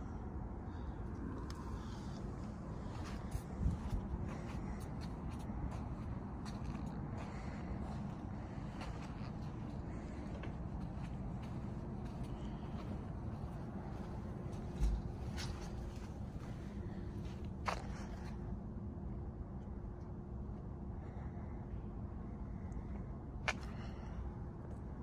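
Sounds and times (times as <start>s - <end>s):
low background hum: 0.0s - 25.0s
light footsteps: 1.4s - 18.4s.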